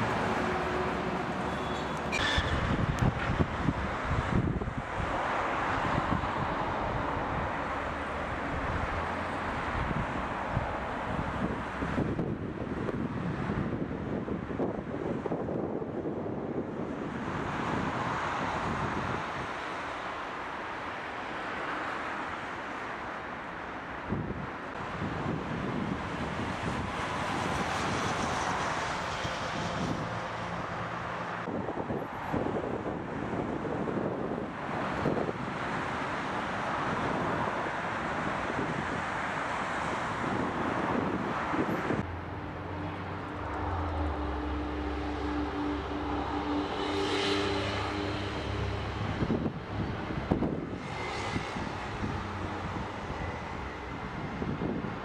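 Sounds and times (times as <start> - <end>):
distant traffic: 0.0 - 15.8, 16.5 - 55.0
wind: 0.0 - 55.0
engine drone with low hum: 41.6 - 55.0.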